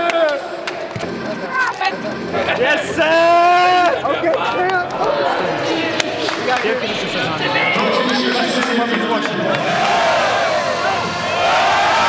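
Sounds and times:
men laughing: 1.1 - 4.7.

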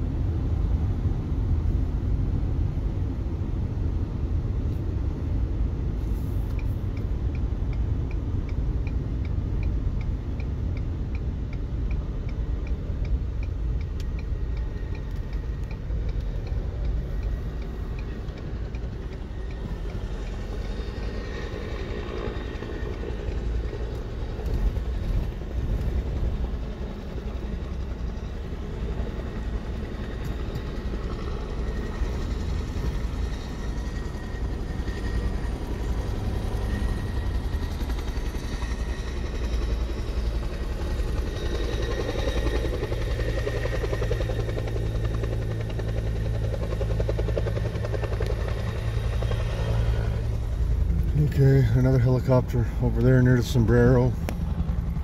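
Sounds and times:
distant helicopter rotor: 0.0 - 55.0
vehicle engine and road noise: 0.0 - 55.0.

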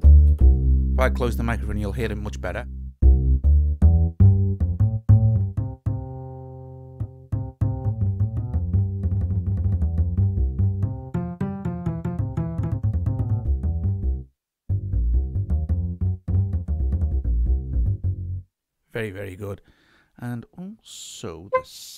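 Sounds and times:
sampled double bass notes: 0.0 - 18.5, 21.5 - 21.9.

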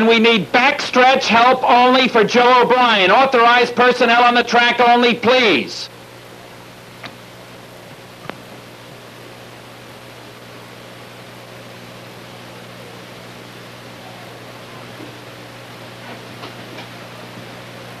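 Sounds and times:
recording hiss and hum: 0.0 - 18.0.

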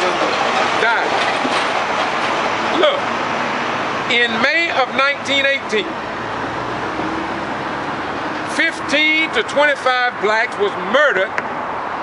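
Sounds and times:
man talking: 0.0 - 1.2, 2.7 - 3.1, 4.1 - 6.0, 8.5 - 11.4
road traffic hiss: 0.0 - 12.0.

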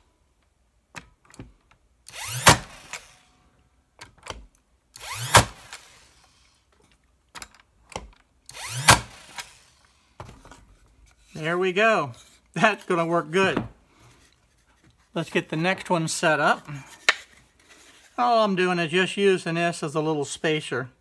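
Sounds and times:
brad stapler firing into wood: 2.1 - 3.2, 5.0 - 6.0, 7.9 - 9.6.

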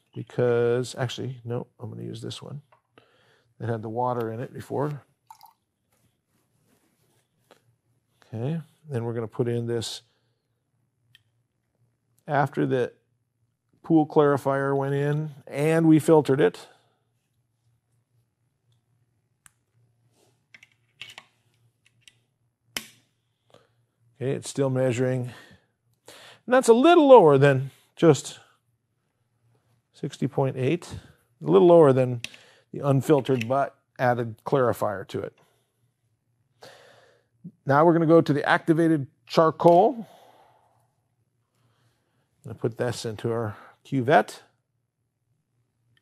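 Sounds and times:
faint low room hum: 0.0 - 46.0.

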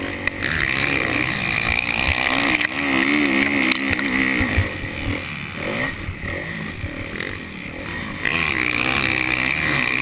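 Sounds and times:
motocross bike engine revving: 0.0 - 10.0.

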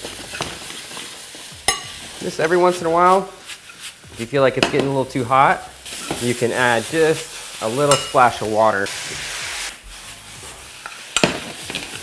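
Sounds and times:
metal spoon stirring: 0.0 - 4.1, 7.1 - 8.4
onions sizzling in a skillet: 0.0 - 12.0
metal utensil clinking on pan: 1.7 - 2.0, 7.9 - 8.3, 10.8 - 12.0.

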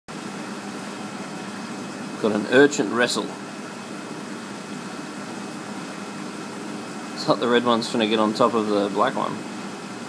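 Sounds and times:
low machinery hum: 0.1 - 10.0.

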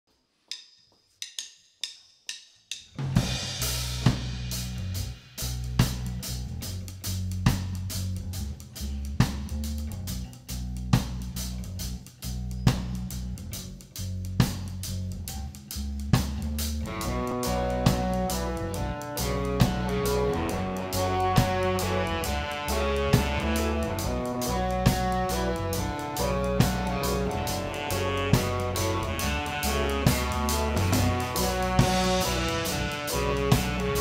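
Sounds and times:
drum kit: 0.5 - 34.0
deep held bass line: 3.2 - 34.0
higher pitched notes: 16.9 - 34.0.

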